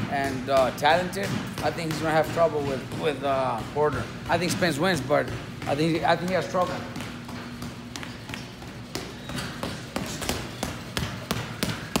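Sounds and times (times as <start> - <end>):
boxing gloves punching bags: 0.0 - 12.0
gym background noise: 0.0 - 12.0.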